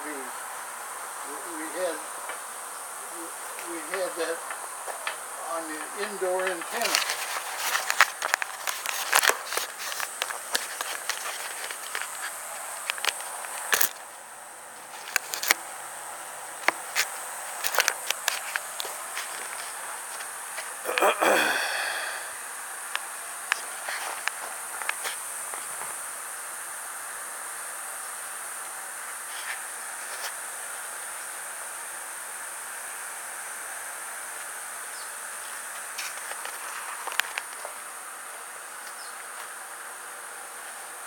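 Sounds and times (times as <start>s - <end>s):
high-pitched insect buzzing: 0.0s - 39.6s.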